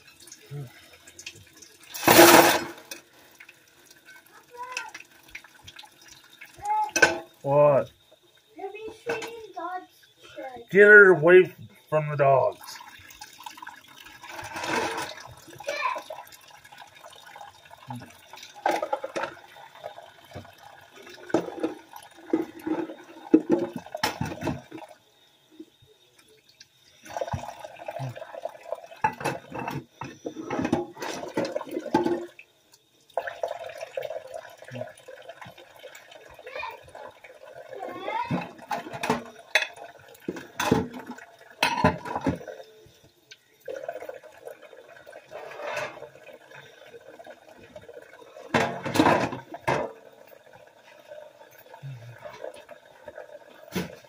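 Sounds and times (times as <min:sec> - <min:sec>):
water running into sink: 0:00.0 - 0:54.0
dishes clinking and knocking: 0:01.9 - 0:03.0, 0:06.9 - 0:07.4, 0:18.6 - 0:19.4, 0:21.2 - 0:24.7, 0:29.0 - 0:32.3, 0:38.3 - 0:42.6, 0:48.5 - 0:50.1.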